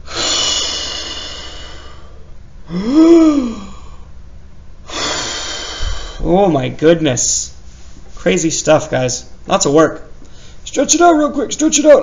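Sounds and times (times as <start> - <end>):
man sighing: 0.0 - 4.1
man breathing loudly: 0.0 - 4.2, 4.8 - 6.4.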